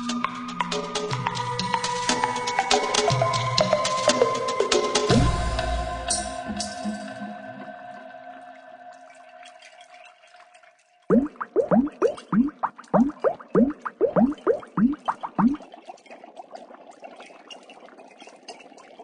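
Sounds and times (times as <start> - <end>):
water pouring trickle: 8.0 - 19.0
water glugging bloops: 11.1 - 15.7.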